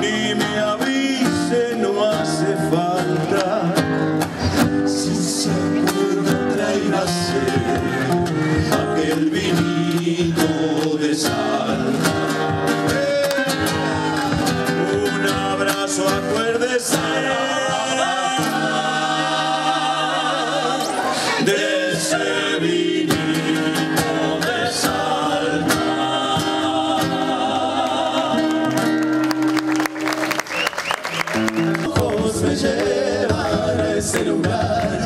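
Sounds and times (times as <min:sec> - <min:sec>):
male vocal group singing: 0:00.0 - 0:29.0, 0:31.8 - 0:35.0
acoustic guitars: 0:00.0 - 0:35.0.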